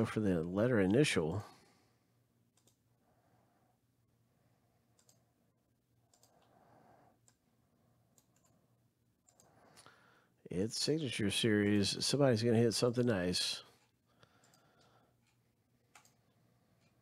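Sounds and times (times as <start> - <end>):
computer mouse clicks: 2.5 - 2.8, 4.9 - 5.3, 6.1 - 6.5, 7.2 - 7.4, 8.1 - 8.6, 9.2 - 9.9, 13.8 - 17.0.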